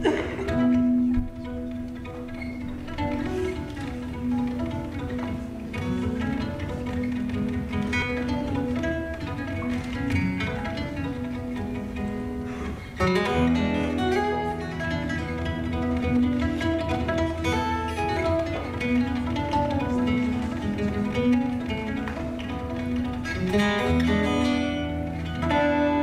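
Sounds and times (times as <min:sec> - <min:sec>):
fingerstyle acoustic guitar: 0:00.0 - 0:26.0.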